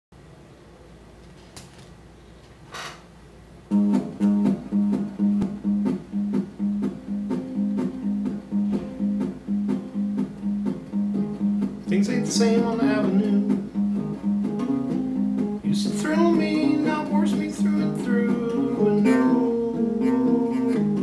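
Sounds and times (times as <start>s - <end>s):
acoustic guitar strumming: 3.7s - 21.0s
person singing: 11.8s - 13.8s, 15.6s - 21.0s.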